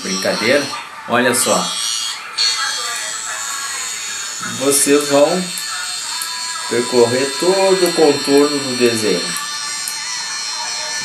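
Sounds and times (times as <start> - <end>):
electric tattoo machine buzzing: 0.0 - 11.0.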